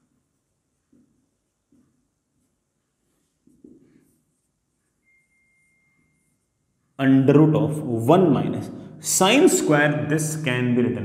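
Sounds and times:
marker strokes on whiteboard: 0:00.3 - 0:04.9
faint high tone: 0:05.0 - 0:06.6.

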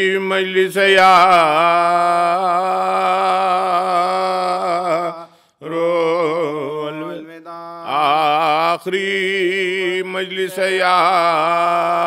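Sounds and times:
man chanting unaccompanied: 0:00.0 - 0:12.0.

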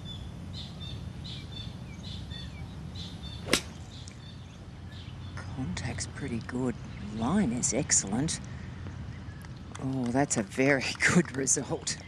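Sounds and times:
bird chirping: 0:00.0 - 0:05.4
golf club striking ball: 0:03.4 - 0:03.9.

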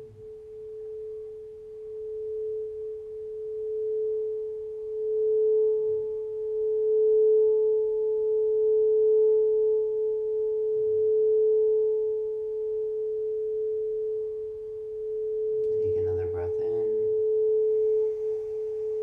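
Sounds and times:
crystal singing bowl ringing: 0:07.5 - 0:19.0.

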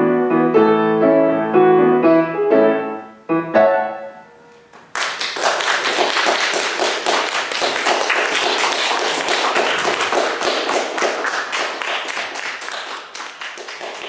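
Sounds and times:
violin and piano piece: 0:00.0 - 0:04.6
group applauding: 0:04.8 - 0:14.0.

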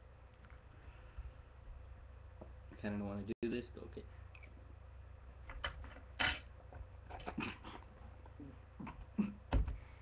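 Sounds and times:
person puffing and coughing: 0:08.8 - 0:09.5.

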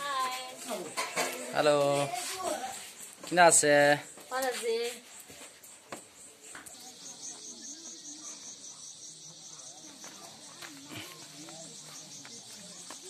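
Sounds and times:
insects chirping: 0:00.0 - 0:13.0
distant voices talking: 0:05.7 - 0:13.0.

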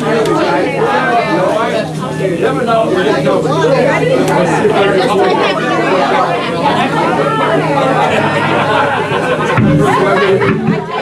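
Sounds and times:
overlapping conversation: 0:00.0 - 0:11.0.

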